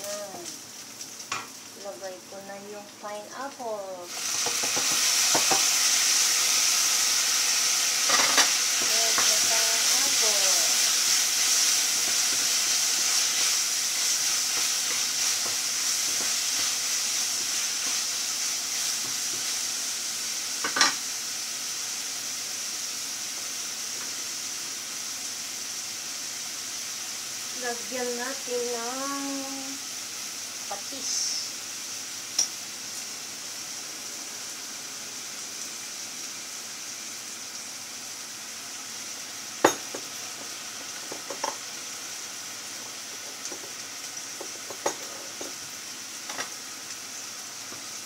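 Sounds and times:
pineapple sizzling in hot oil: 0.0 - 48.0.

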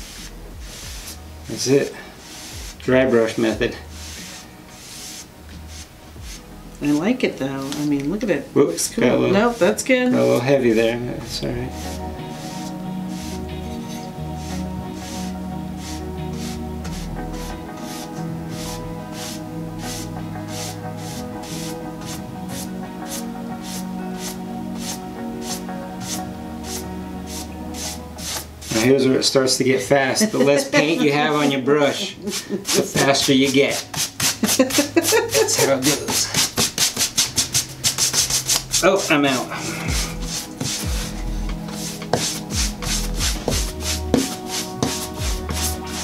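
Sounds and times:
dry paintbrush swishing on board: 0.0 - 8.1, 9.0 - 29.2, 30.4 - 46.0
background music with held chords: 0.0 - 46.0.

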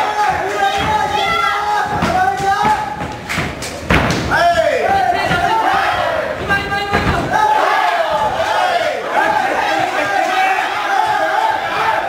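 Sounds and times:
crowd shouting: 0.0 - 3.0, 4.3 - 12.0
sharp thuds of blows: 0.4 - 7.6.

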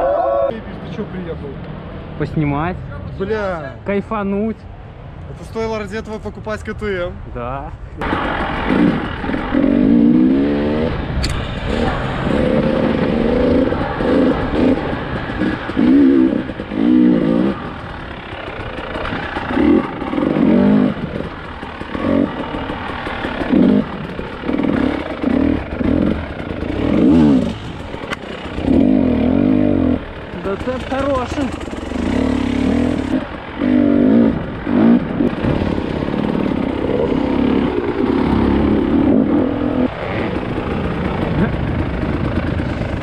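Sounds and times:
two-stroke motorcycle engine revving: 8.0 - 43.0.

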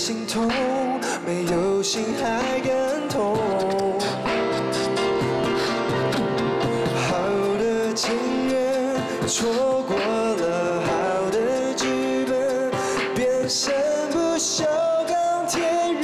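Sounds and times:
beatboxing drum sounds: 0.0 - 16.0
grand piano: 0.0 - 16.0
man singing a pop ballad: 0.0 - 16.0.

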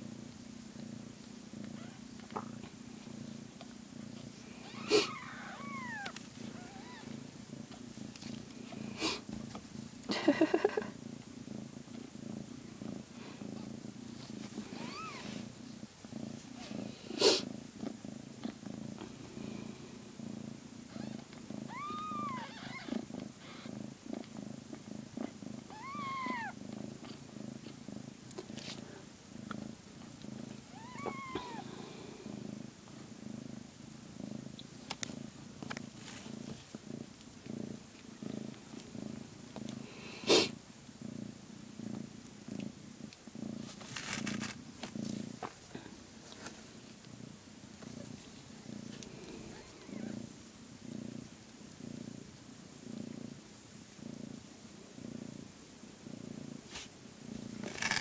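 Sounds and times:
cat purring: 0.0 - 58.0
newborn kittens mewing: 1.7 - 2.1, 4.6 - 7.2, 14.7 - 15.5, 20.9 - 23.7, 25.7 - 27.2, 30.7 - 31.9, 49.2 - 50.2.

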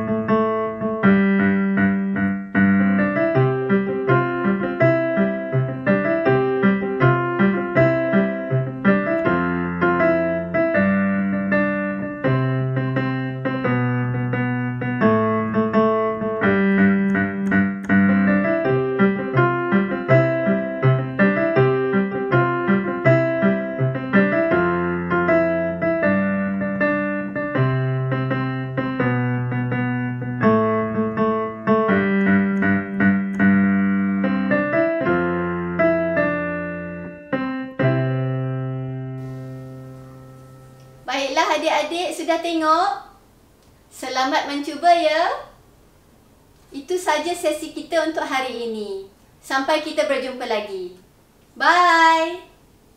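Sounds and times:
gentle piano music: 0.0 - 42.6.

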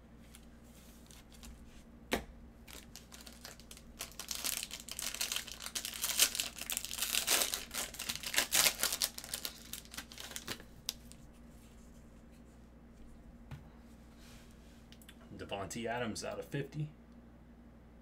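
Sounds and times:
foil wrapper tearing and crinkling: 2.7 - 11.2.

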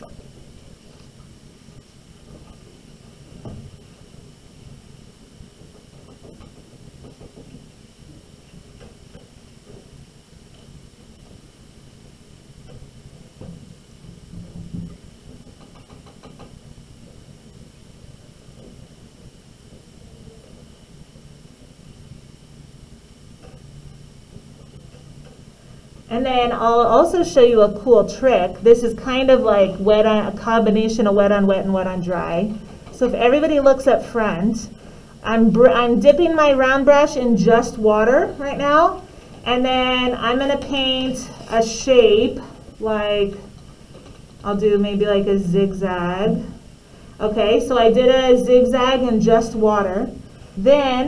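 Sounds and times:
low steady hum: 0.0 - 51.0.

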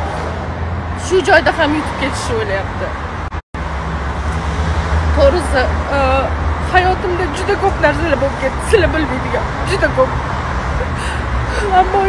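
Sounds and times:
passing vehicles rumble: 0.0 - 12.0.

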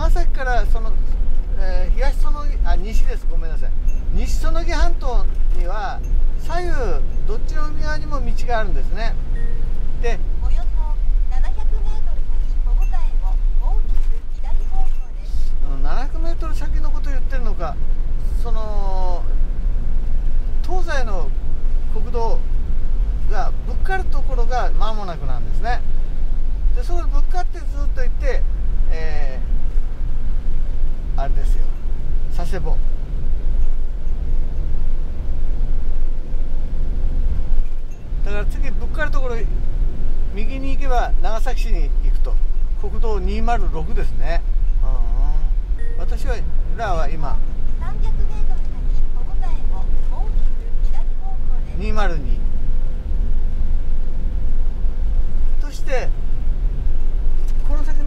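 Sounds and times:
man speaking: 0.0 - 9.3, 10.0 - 10.3, 15.3 - 19.4, 20.6 - 22.5, 23.2 - 25.9, 26.7 - 29.5, 31.1 - 32.9, 38.2 - 39.6, 40.3 - 47.6, 51.6 - 52.5, 55.6 - 56.2, 57.4 - 58.0
engine and tyres rumbling: 0.0 - 58.0
faint steady whine: 0.0 - 58.0
van driving on wet road: 0.0 - 58.0.

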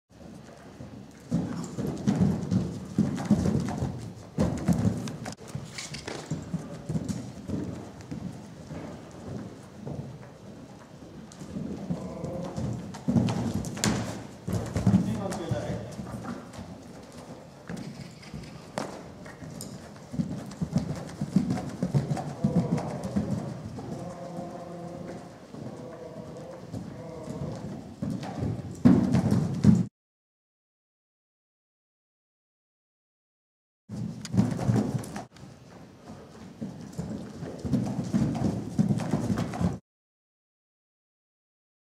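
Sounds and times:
horse hoofbeats on sand: 0.2 - 29.9, 33.9 - 39.8.

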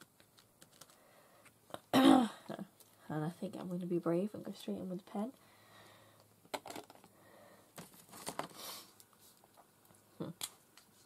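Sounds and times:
paper rustling: 7.8 - 9.6.

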